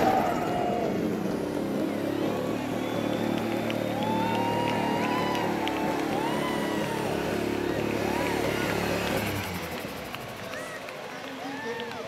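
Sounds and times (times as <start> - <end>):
rally car engine at low revs: 0.0 - 10.6
crowd voices: 0.0 - 12.0.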